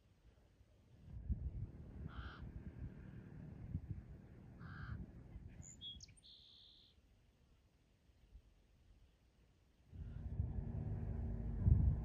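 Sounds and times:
caw-like bird calls: 0:02.1 - 0:02.5, 0:04.6 - 0:05.0
higher bird chirps: 0:05.6 - 0:07.0.

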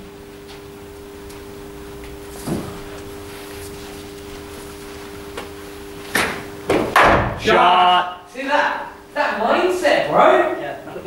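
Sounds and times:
steady two-tone hum: 0:00.0 - 0:11.0.

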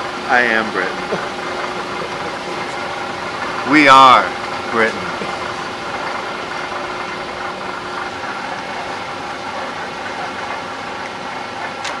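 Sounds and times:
shop machinery hum and hiss: 0:00.0 - 0:12.0.

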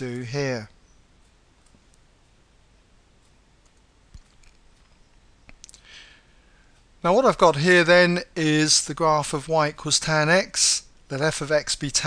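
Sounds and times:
computer mouse clicks: 0:03.2 - 0:05.8.

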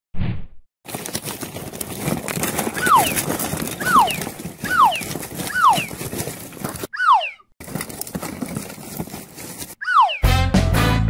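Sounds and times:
rustling clatter of rummaging: 0:00.8 - 0:06.9, 0:07.6 - 0:09.8
cartoon falling whistle: 0:06.9 - 0:07.4, 0:09.8 - 0:10.3.

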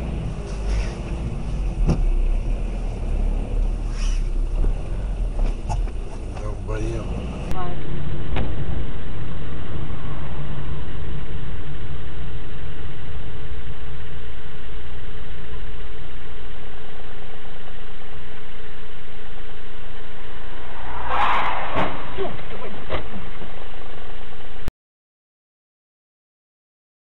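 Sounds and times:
car engine and road noise: 0:00.0 - 0:15.3, 0:20.0 - 0:24.7.

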